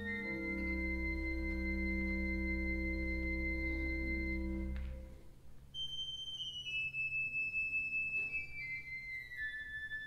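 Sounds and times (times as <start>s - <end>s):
high held organ notes descending: 0.0s - 5.1s
pipe organ chord: 0.0s - 5.2s.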